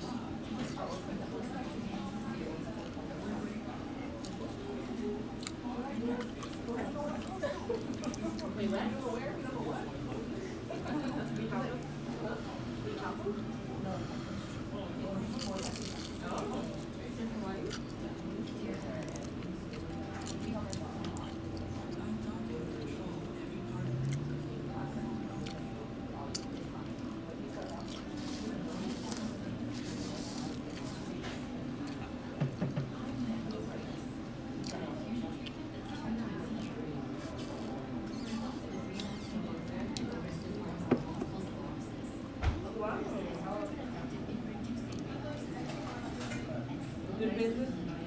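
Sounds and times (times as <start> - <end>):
crunching crispy egg roll: 15.3 - 16.9.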